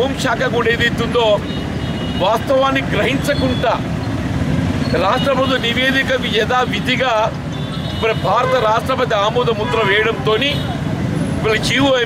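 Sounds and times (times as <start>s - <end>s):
man speaking: 2.2s - 3.9s, 4.9s - 7.4s, 8.0s - 10.7s, 11.4s - 12.0s.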